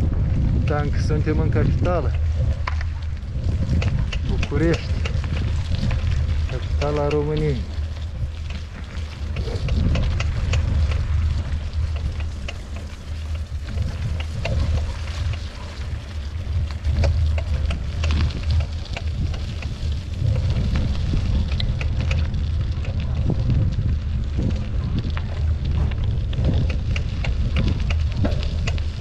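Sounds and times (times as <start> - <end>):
bicycle tyres rolling on muddy road: 0.0 - 29.0
crackles and clicks under wheels: 0.0 - 29.0
wind rumble on microphone: 0.0 - 29.0.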